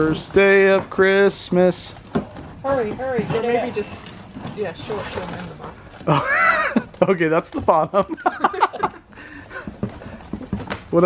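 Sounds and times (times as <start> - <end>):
cardboard rustling: 0.0 - 11.0.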